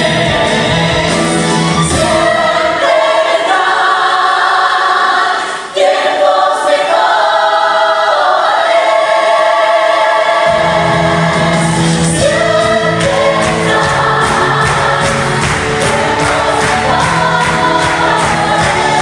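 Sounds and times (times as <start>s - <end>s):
ensemble singing: 9.1s - 19.0s.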